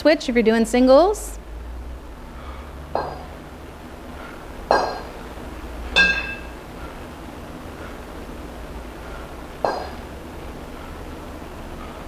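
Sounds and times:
kettlebells clinking together: 0:06.0 - 0:06.6.

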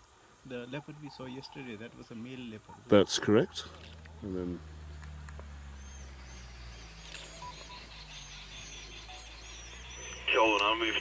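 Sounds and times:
bird chirping: 0:00.4 - 0:11.0.

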